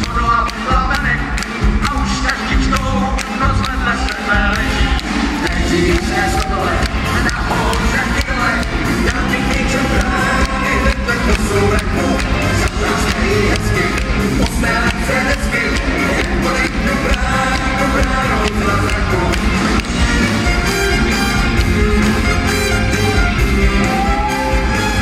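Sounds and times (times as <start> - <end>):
steady drum beat: 0.0 - 25.0
live band playing: 0.1 - 25.0.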